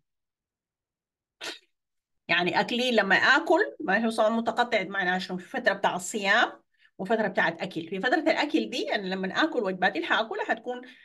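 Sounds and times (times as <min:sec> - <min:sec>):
woman speaking: 0:02.3 - 0:11.0.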